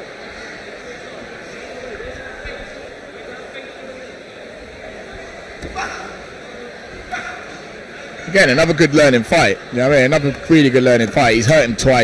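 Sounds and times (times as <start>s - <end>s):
murmuring crowd: 0.0s - 12.0s.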